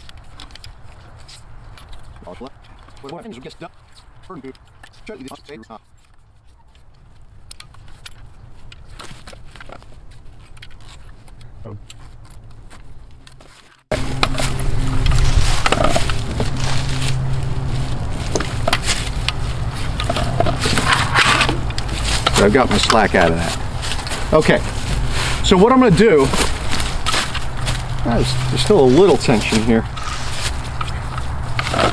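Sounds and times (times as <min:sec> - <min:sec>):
steady low hum: 0:11.0 - 0:31.9
winch mechanism clicking and rattling: 0:28.7 - 0:31.9.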